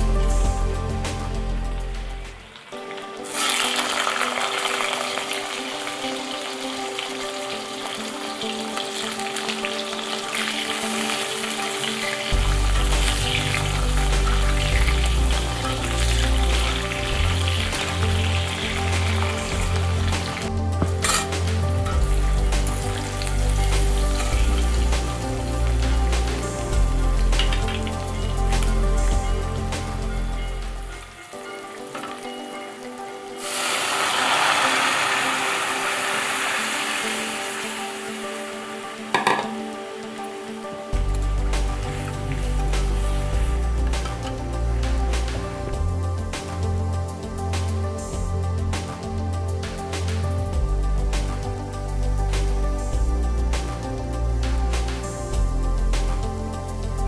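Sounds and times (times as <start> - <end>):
slices sizzling in hot oil: 2.4 - 45.8
steel spatula scraping: 20.9 - 22.0.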